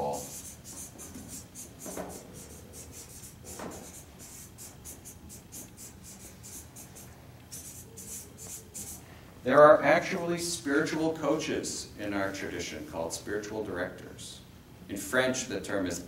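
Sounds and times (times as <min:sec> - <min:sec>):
marker writing on paper: 0:00.0 - 0:09.0.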